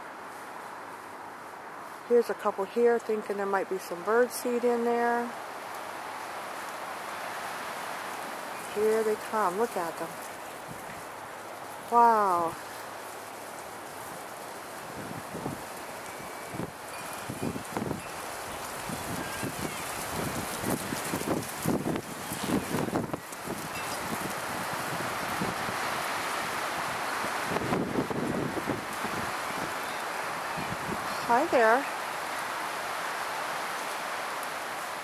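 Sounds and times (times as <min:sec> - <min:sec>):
rustling in dry leaves: 0:00.0 - 0:35.0
wind on microphone: 0:14.8 - 0:31.8.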